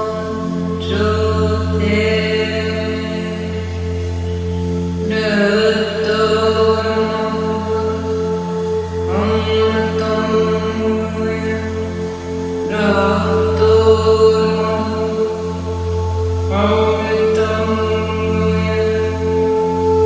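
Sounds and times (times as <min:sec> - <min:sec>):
singing bowls ringing: 0:00.0 - 0:20.0
woman chanting: 0:00.0 - 0:20.0.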